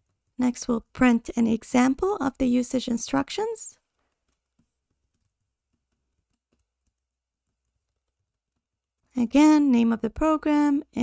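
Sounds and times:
faint keyboard typing: 0:02.0 - 0:09.7.

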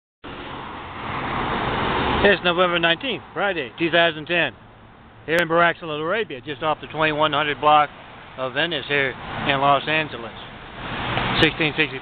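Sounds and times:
car passing: 0:00.2 - 0:12.0.

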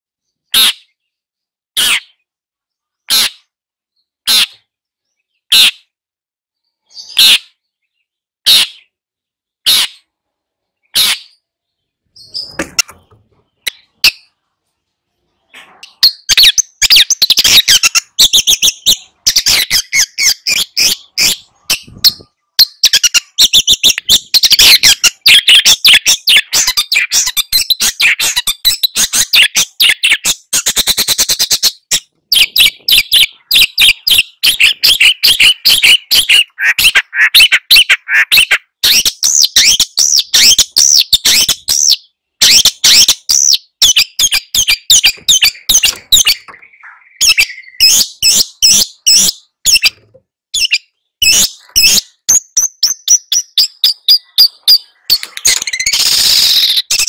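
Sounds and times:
bird harsh chattering song: 0:00.2 - 0:06.0, 0:06.6 - 0:57.0.

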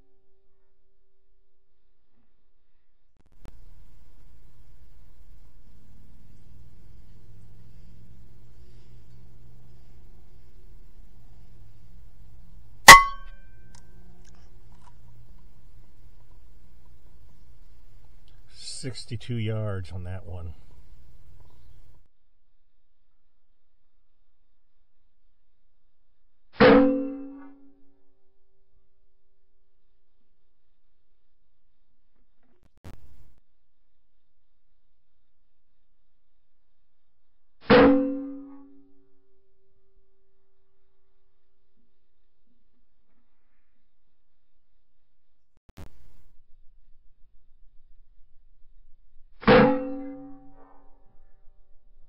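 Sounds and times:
brief ring: 0:12.9 - 0:13.6.

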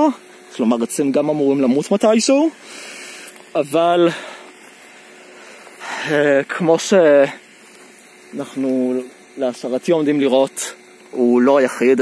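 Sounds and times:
man talking: 0:00.0 - 0:02.6, 0:03.5 - 0:04.3, 0:05.8 - 0:07.4, 0:08.3 - 0:12.0
man breathing in: 0:02.6 - 0:03.4.

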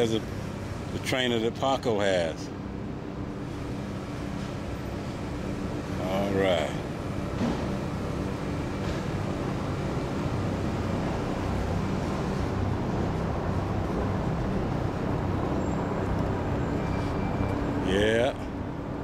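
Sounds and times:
distant traffic rumble: 0:00.0 - 0:19.0.

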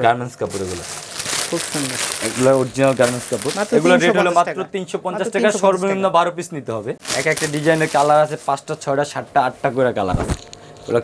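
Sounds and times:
plastic packaging crinkling: 0:00.4 - 0:04.1, 0:07.0 - 0:08.8.

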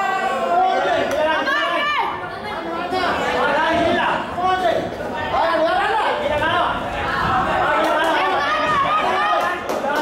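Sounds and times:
spectators shouting and chattering: 0:00.0 - 0:10.0.

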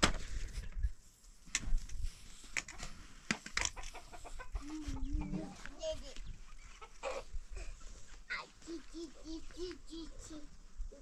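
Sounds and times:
chickens clucking: 0:02.6 - 0:09.7.

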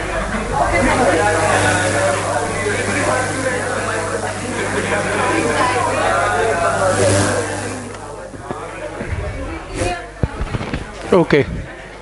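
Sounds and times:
indistinct voices: 0:00.0 - 0:12.0
low electrical hum: 0:00.0 - 0:12.0.

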